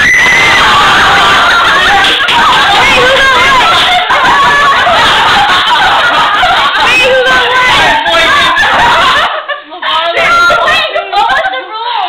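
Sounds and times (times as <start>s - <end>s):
young people laughing: 0.4s - 12.0s.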